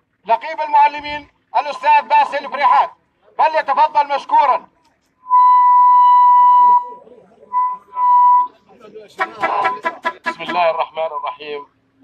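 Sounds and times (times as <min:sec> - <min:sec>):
megaphone feedback whistle: 0:05.2 - 0:08.6.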